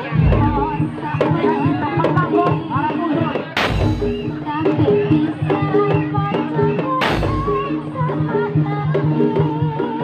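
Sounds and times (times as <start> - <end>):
heavy low drum beat: 0.0 - 8.5
percussion ensemble with barrel drums: 0.0 - 10.0
woman singing into a microphone: 0.0 - 10.0.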